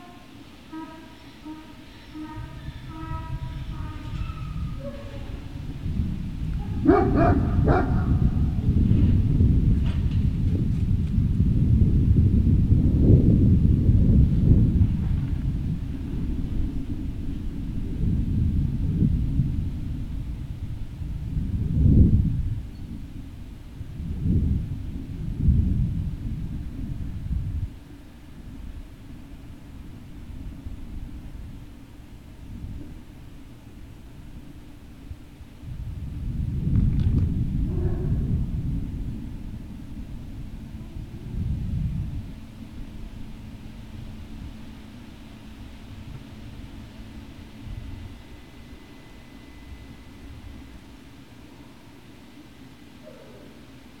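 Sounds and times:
wind buffeting a microphone: 0:01.5 - 0:52.6.

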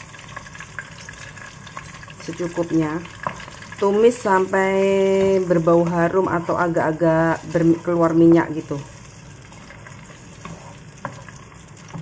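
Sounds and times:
paste sizzling in hot oil: 0:00.0 - 0:12.0.

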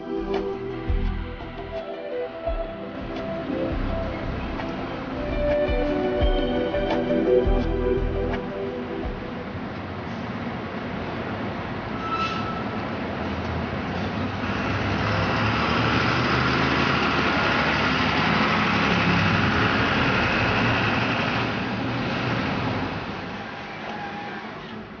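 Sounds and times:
bus driving past: 0:00.0 - 0:25.0.

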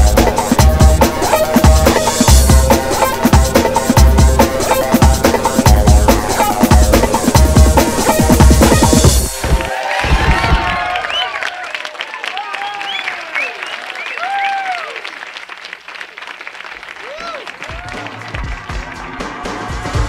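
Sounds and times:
backing music with beat: 0:00.0 - 0:10.7
audience applauding and cheering: 0:09.2 - 0:20.0
whoops from crowd: 0:09.7 - 0:15.1, 0:17.0 - 0:18.1.

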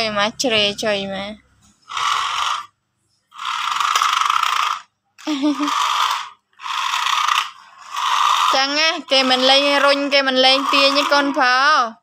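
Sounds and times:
toy car motor whirring: 0:01.8 - 0:12.0.

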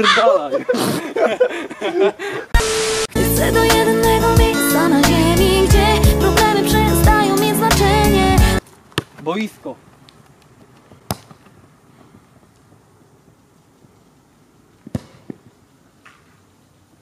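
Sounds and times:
pop song with singing: 0:03.1 - 0:08.6
football being kicked: 0:08.9 - 0:09.2, 0:10.9 - 0:11.5, 0:14.9 - 0:15.4.

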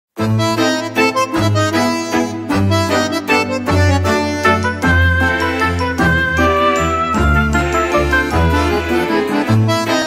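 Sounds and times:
steady bass line: 0:02.4 - 0:10.0.

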